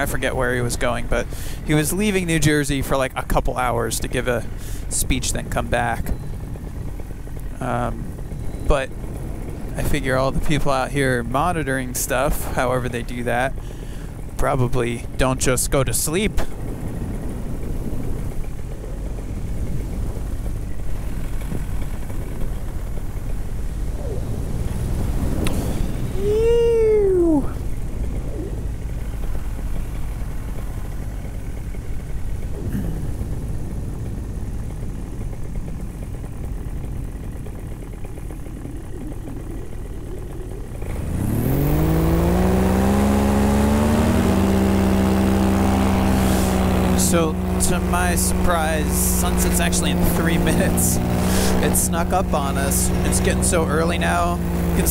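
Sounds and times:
paramotor engine: 0.0 - 54.9.

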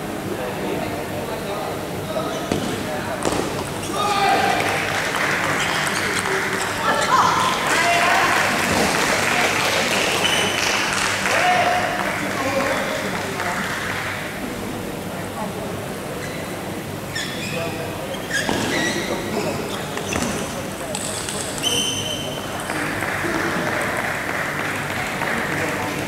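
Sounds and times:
crowd noise: 0.0 - 26.0
people shouting: 3.9 - 4.8.

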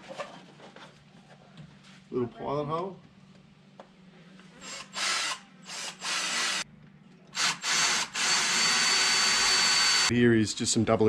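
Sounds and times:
cordless drill whining: 4.6 - 6.6, 7.4 - 10.1.

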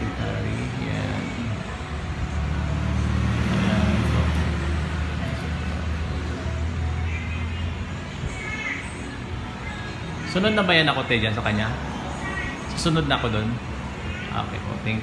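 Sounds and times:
passing vehicle engine hum: 0.0 - 15.0.

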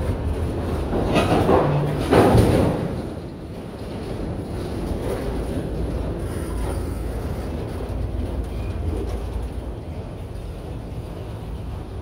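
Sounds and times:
freight cars rolling on rails: 0.0 - 12.0.

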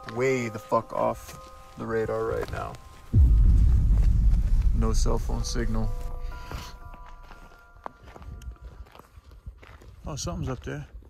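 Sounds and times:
footsteps on dirt path: 0.0 - 11.0.

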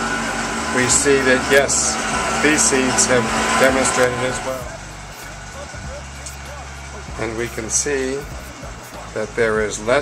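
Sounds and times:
faint rising and falling tones: 0.0 - 9.2
steady low hum: 0.0 - 10.0.

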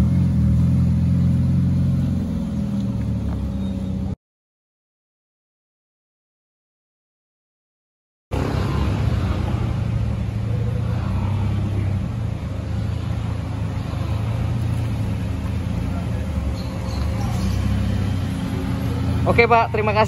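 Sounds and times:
car engine exhaust at low revs: 0.0 - 4.2, 8.4 - 20.0.

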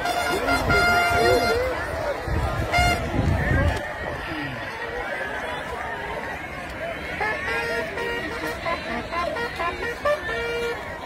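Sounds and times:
crowd talking and calling: 0.0 - 11.0.

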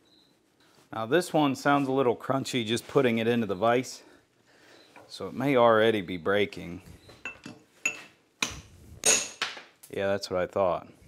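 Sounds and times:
hammer clinking on steel: 7.2 - 9.5.

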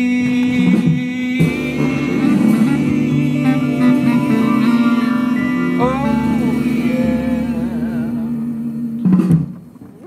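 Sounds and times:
comic song final chord: 1.6 - 8.4.

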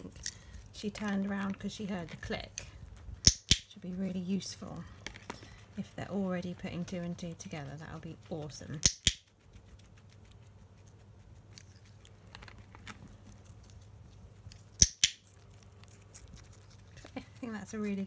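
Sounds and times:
faint ticks and rustles: 0.0 - 14.8
training clicker clicking: 8.8 - 9.2.

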